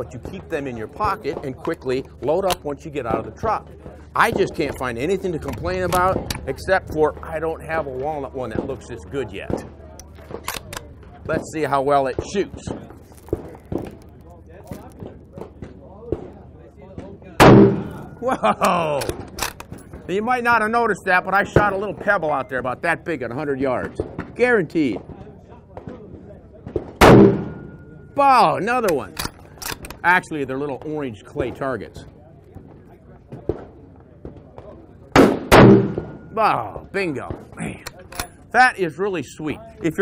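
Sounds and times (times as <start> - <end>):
rifle shot echoing: 17.4 - 18.2, 26.8 - 28.1, 35.2 - 36.3.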